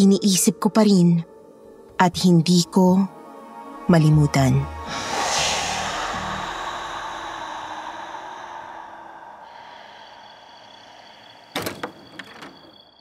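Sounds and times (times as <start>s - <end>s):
low hum: 4.4s - 11.5s
hiss-like noise swell: 4.6s - 11.7s.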